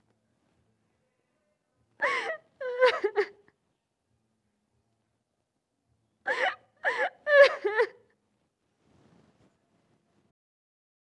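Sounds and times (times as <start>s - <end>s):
woman wailing and crying: 2.0s - 3.4s, 6.3s - 8.0s.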